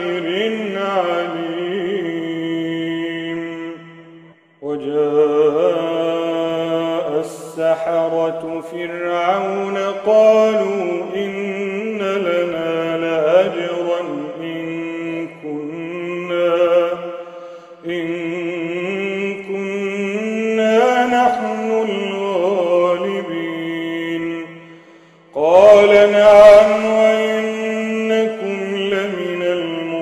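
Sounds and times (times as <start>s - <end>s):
man chanting melodically: 0.0s - 30.0s.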